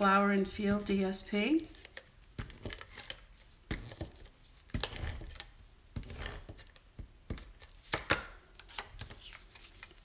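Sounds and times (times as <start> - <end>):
faint paper rustling: 8.6 - 10.0.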